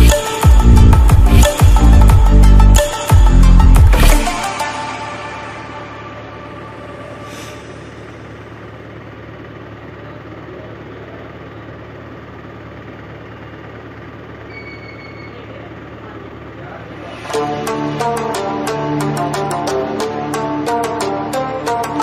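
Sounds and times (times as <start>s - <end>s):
machine hum and hiss: 4.6s - 19.5s
short high beep: 14.5s - 15.5s.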